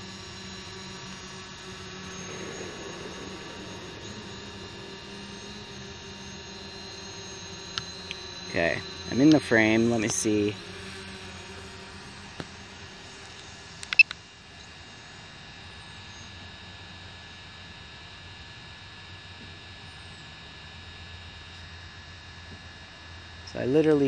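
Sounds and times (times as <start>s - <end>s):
steady low hum: 0.0s - 17.8s
sharp clicks: 13.8s - 14.2s.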